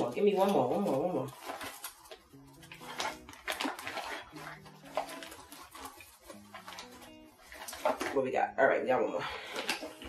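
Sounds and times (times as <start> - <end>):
bag rustling and crackling: 0.0 - 8.3
soft background music: 0.0 - 10.0.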